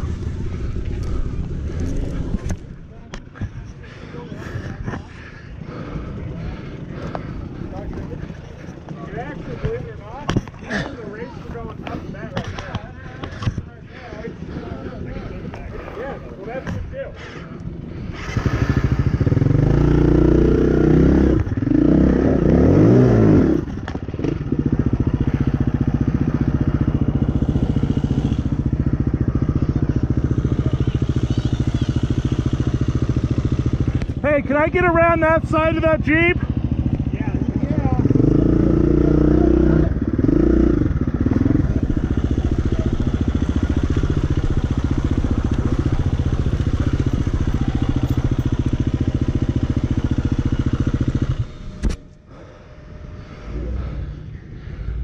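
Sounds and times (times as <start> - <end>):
faint voices: 0.0 - 18.2, 24.8 - 40.2
dirt bike engine revving: 18.0 - 54.4.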